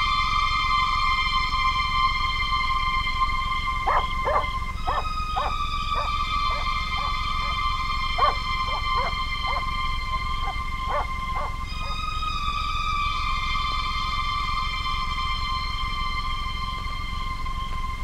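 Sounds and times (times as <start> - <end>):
eerie synthesizer horror score: 0.0 - 18.0.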